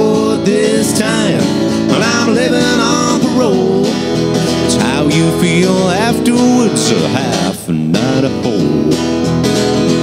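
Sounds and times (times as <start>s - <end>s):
man singing: 0.0s - 9.2s
acoustic guitar strumming: 0.0s - 10.0s.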